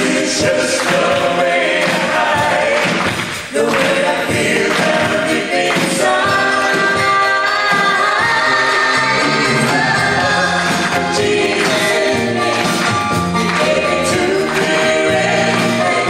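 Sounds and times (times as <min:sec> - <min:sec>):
drums: 0:00.0 - 0:16.0
keyboard: 0:00.0 - 0:16.0.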